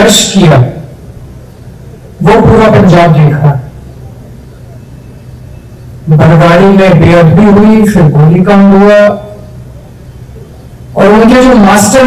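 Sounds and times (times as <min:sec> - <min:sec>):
faint background noise: 0:00.0 - 0:12.0
steady low hum: 0:00.0 - 0:12.0.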